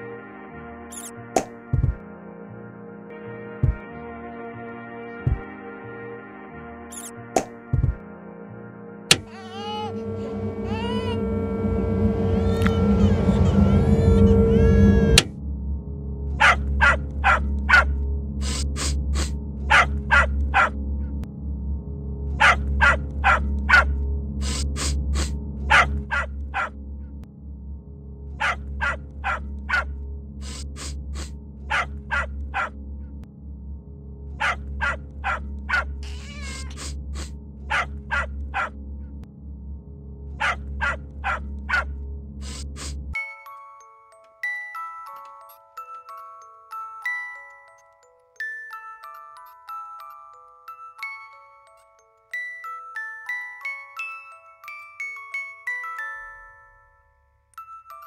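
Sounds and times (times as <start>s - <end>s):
hum with whistling tones: 9.1s - 15.7s
low hum: 9.1s - 43.2s
low steady drone: 9.1s - 43.2s
cartoon dog yapping: 16.4s - 20.7s, 22.4s - 26.7s, 28.4s - 29.8s, 30.4s - 32.7s, 34.4s - 38.7s, 40.4s - 43.0s
dog whimpering: 35.3s - 37.9s.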